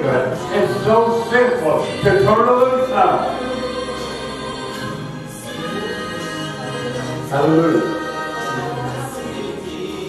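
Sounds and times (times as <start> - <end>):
gospel church music: 0.0 - 10.0
voices singing: 0.0 - 10.0.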